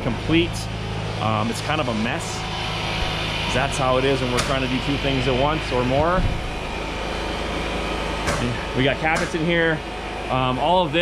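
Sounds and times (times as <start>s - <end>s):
low hum: 0.0s - 11.0s
mechanical drone: 0.0s - 11.0s
person speaking: 8.4s - 11.0s.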